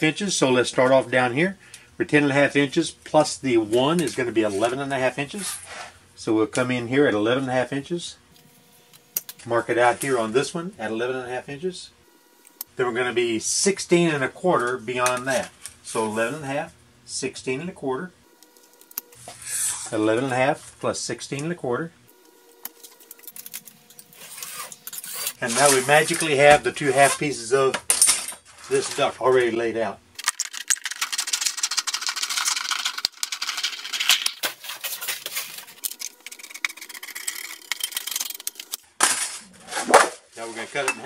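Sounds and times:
man talking: 9.4s - 11.9s, 12.8s - 18.2s, 19.9s - 22.0s, 25.4s - 27.8s, 28.7s - 30.0s, 40.4s - 41.0s
tin snips cutting metal sheet: 22.6s - 25.7s.

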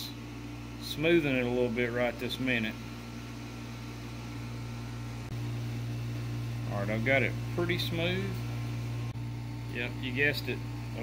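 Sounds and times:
steady low fan hum: 0.0s - 11.0s.

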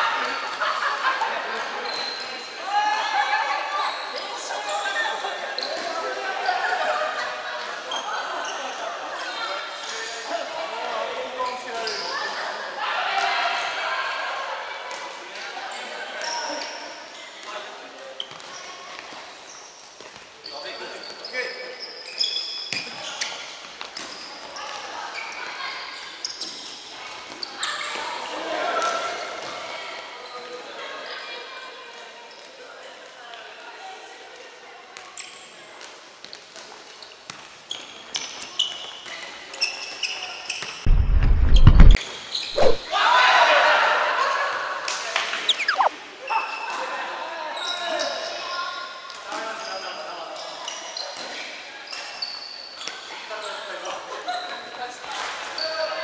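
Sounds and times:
ball kicks and bounces: 40.9s - 42.0s, 42.6s - 42.8s
shoes squeaking on wooden floor: 40.9s - 42.0s, 45.5s - 45.9s
players calling out: 45.5s - 45.9s.

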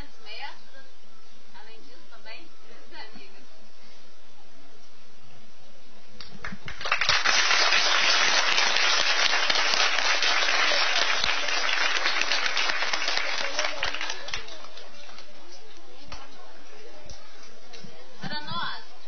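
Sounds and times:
audience applauding: 6.4s - 15.4s.

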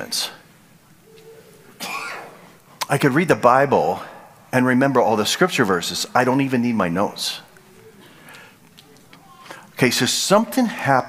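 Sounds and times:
man speaking: 0.0s - 0.5s, 2.8s - 7.6s, 9.2s - 11.0s
short cough: 1.8s - 2.4s.

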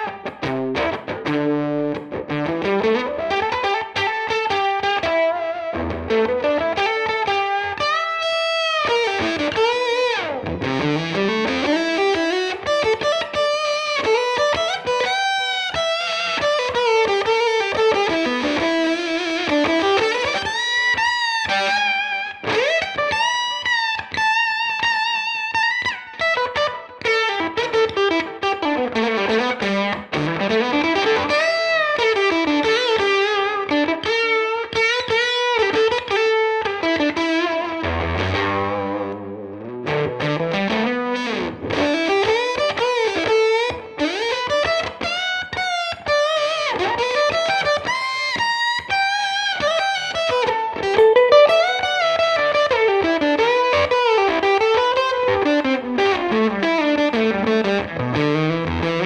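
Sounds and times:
electric guitar lead lines: 0.0s - 59.0s.

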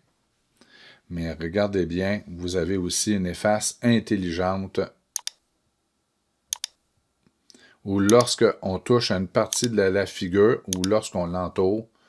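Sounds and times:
computer mouse double click: 5.2s - 5.4s, 6.5s - 6.8s.

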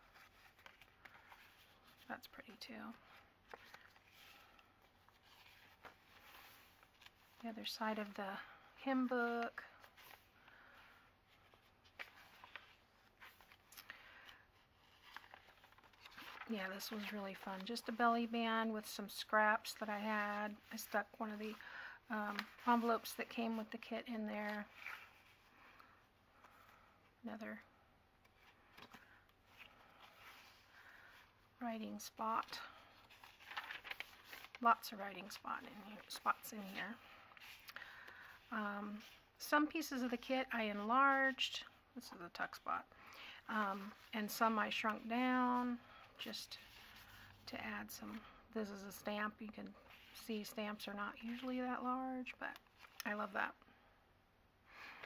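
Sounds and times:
paper cards ticking and rustling: 0.0s - 7.4s, 11.4s - 18.0s, 22.3s - 23.9s, 32.4s - 38.4s
paper rustling and tapping: 33.1s - 34.6s.

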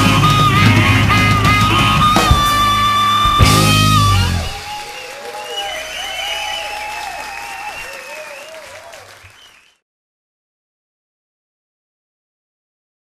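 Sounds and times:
band guitar-led chord: 0.0s - 4.9s
high-pitched cheers: 2.1s - 9.7s
audience applause: 2.2s - 9.8s.

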